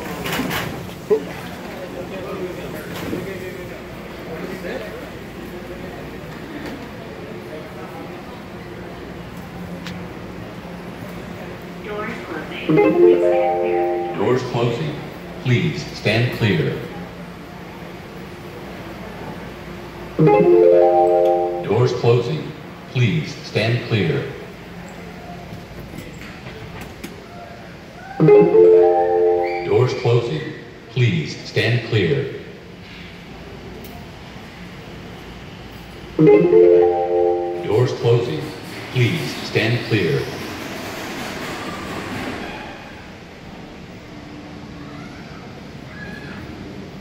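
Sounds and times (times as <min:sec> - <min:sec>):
doors closing announcement: 0:00.0 - 0:32.8, 0:36.0 - 0:42.3
train running noise: 0:00.0 - 0:47.0
low station hum: 0:08.1 - 0:24.8, 0:28.2 - 0:32.8, 0:36.1 - 0:40.0.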